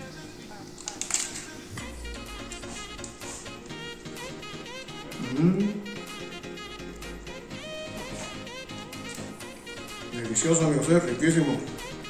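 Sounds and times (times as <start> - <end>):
upbeat jazz music with horn melody: 1.8 - 12.0.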